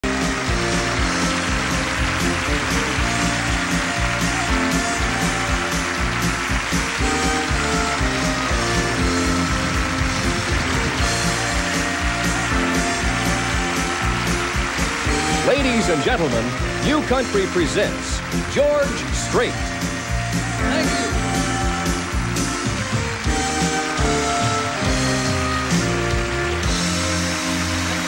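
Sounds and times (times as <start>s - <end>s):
steady drum beat: 0.0s - 27.2s
country band instrumental: 0.0s - 28.0s.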